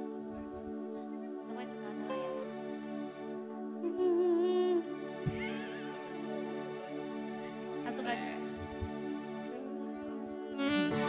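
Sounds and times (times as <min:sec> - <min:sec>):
keyboard chords: 0:00.0 - 0:11.0
wavering melody line: 0:00.0 - 0:11.0.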